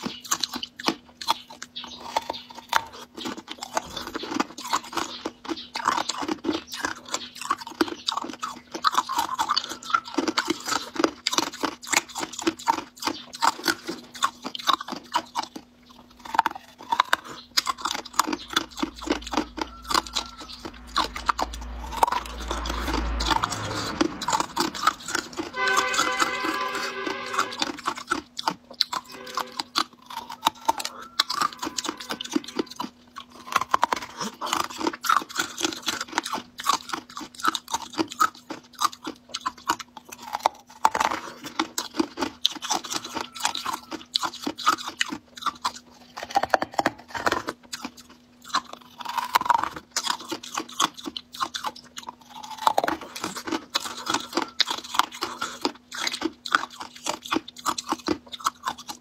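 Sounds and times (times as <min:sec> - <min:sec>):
crunching and chewing ice: 0:00.0 - 0:59.0.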